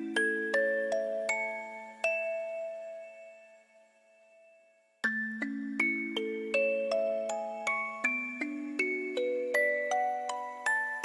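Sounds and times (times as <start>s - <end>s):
music box melody: 0.0s - 11.0s.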